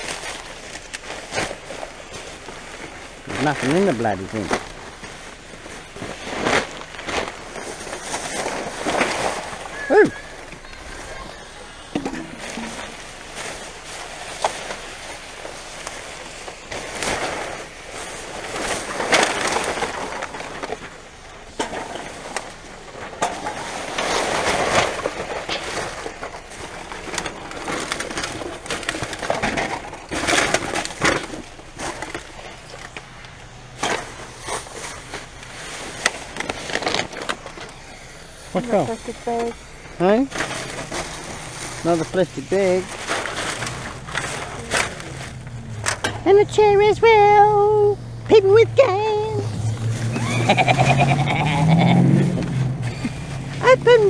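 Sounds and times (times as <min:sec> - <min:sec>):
rubbish scraping and knocking: 0:00.0 - 0:37.8, 0:40.2 - 0:46.7
plastic bags rustling: 0:00.0 - 0:54.0.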